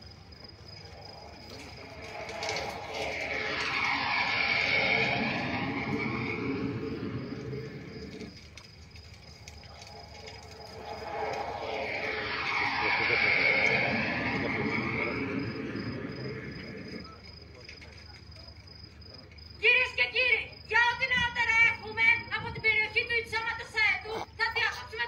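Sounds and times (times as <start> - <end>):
vehicles passing by: 0.8 - 17.2.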